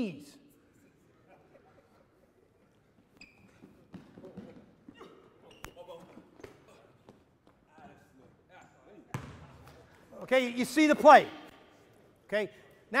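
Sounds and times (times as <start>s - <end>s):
basketball bouncing on court: 3.5s - 4.7s, 9.1s - 9.8s.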